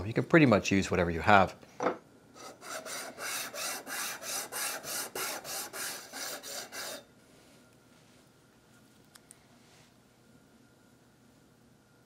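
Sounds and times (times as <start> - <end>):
plastic rasping against steel file: 2.4 - 7.0.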